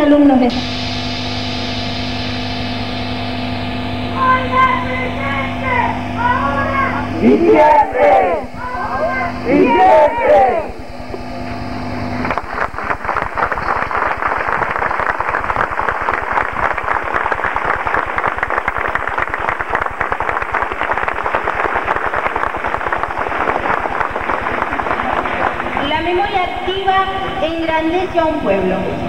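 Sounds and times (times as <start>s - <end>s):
crowd applauding: 12.2s - 26.4s.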